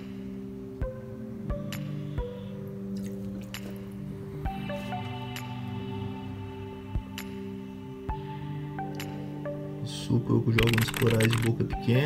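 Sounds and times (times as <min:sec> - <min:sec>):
calm music with ringing notes: 0:00.0 - 0:12.0.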